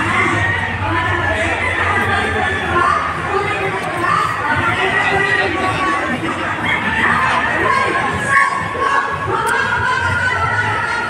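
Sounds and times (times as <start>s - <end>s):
crowd din in a large hall: 0.0s - 11.0s.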